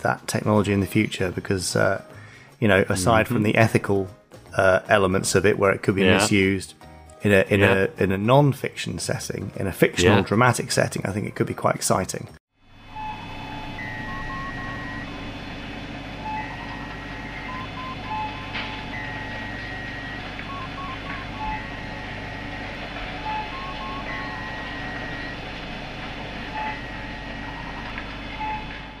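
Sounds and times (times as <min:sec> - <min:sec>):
low hum: 0:12.6 - 0:29.0
computer-style beeps: 0:16.2 - 0:25.4, 0:26.4 - 0:29.0.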